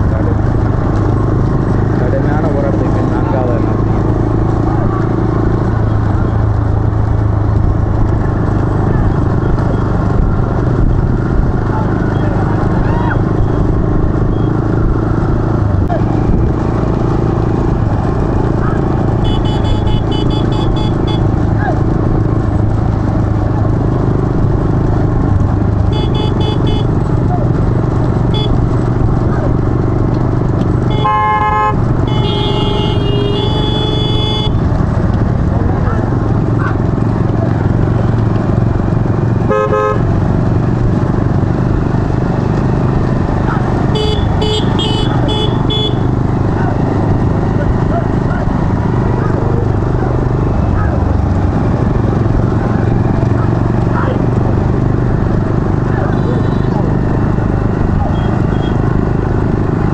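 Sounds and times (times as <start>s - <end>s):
motorcycle engines droning: 0.0s - 59.9s
men shouting: 12.0s - 13.3s
horns honking: 18.8s - 21.4s, 25.8s - 27.3s, 28.2s - 28.7s, 30.8s - 34.7s, 39.4s - 40.2s, 43.8s - 46.3s, 56.0s - 57.0s, 58.0s - 59.0s.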